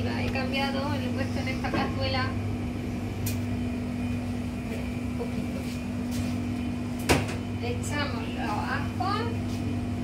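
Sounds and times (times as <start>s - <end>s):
kitchen equipment humming: 0.0s - 10.0s.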